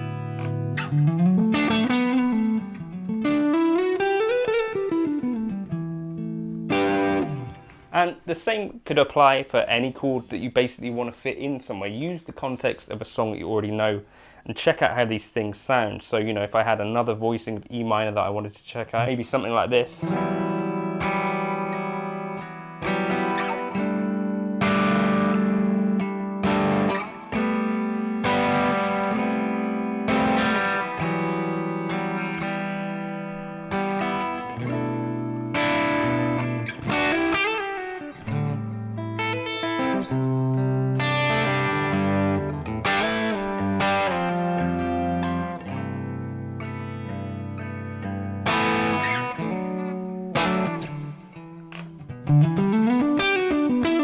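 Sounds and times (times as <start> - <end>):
electric guitar chords and fills: 0.0 - 8.0, 20.0 - 54.0.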